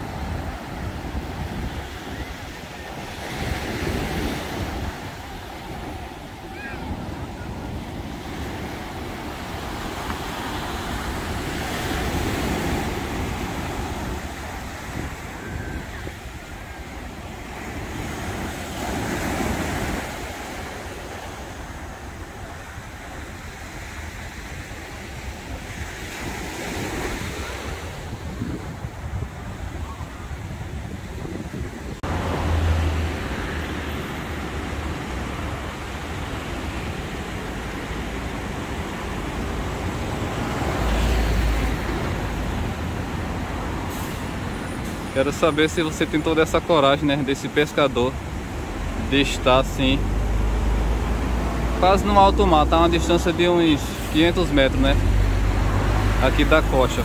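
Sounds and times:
surf breaking on shore: 0:00.0 - 0:57.0
wind buffeting microphone: 0:03.9 - 0:17.1, 0:25.2 - 0:36.3.

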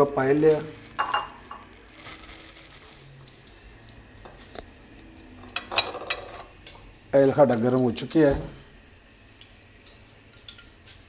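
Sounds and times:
cookware clatter: 0:01.0 - 0:01.6, 0:05.4 - 0:06.5
kitchen utensils clinking: 0:01.0 - 0:01.6, 0:05.4 - 0:06.6.

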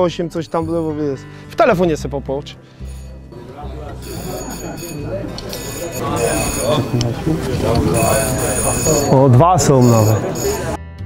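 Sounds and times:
people talking: 0:00.0 - 0:02.2, 0:03.4 - 0:10.8
high electronic bell ringing: 0:00.4 - 0:01.1, 0:02.8 - 0:03.2, 0:04.0 - 0:07.0, 0:07.9 - 0:10.8.

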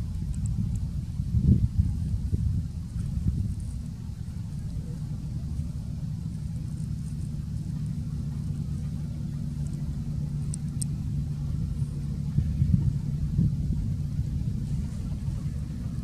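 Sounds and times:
faint high ticks: 0:00.0 - 0:00.9, 0:09.6 - 0:11.0
low hum: 0:00.0 - 0:16.0
low rumble: 0:00.0 - 0:16.0.

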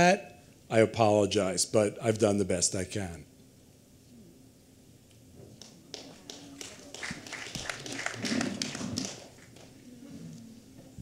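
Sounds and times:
audience clapping: 0:05.6 - 0:09.8.

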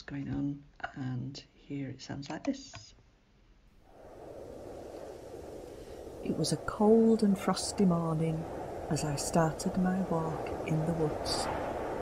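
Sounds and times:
wind hiss: 0:03.8 - 0:12.0.

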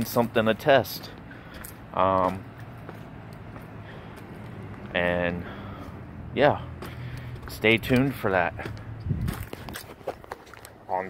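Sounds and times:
light footsteps: 0:00.0 - 0:11.0.

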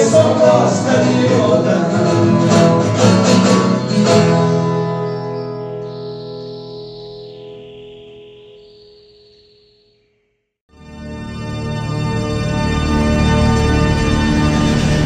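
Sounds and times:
viola caipira strumming: 0:00.0 - 0:09.4
acoustic guitar strumming: 0:00.0 - 0:09.6.

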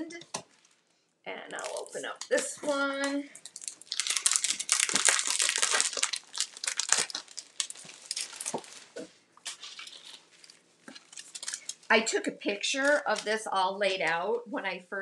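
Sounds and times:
paper packaging crinkling: 0:01.5 - 0:11.9, 0:12.7 - 0:13.5.

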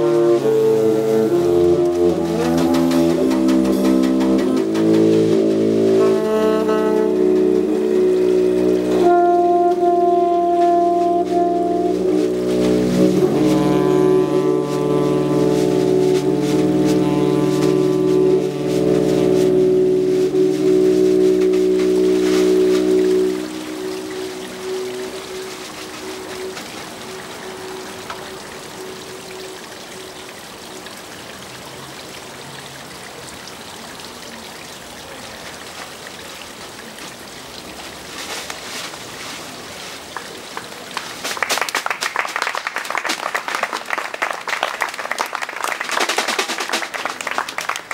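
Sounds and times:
bowed double bass: 0:00.0 - 0:31.0
saxophone sustained notes: 0:00.0 - 0:34.8.

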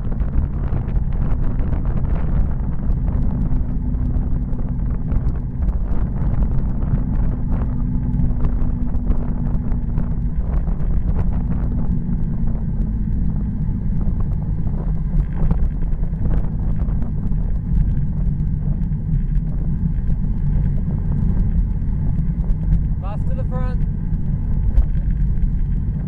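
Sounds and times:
road rumble: 0:00.0 - 0:26.0
steady low hum: 0:00.0 - 0:26.0
wind rushing over microphone: 0:00.0 - 0:26.0.

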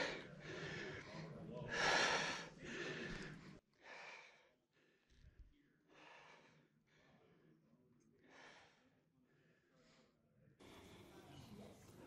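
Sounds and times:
person breathing close: 0:00.0 - 0:07.2.

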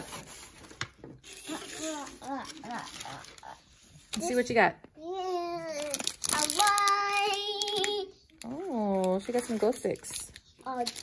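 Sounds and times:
paper bag and tissue rustling: 0:00.0 - 0:04.4, 0:05.7 - 0:11.0.

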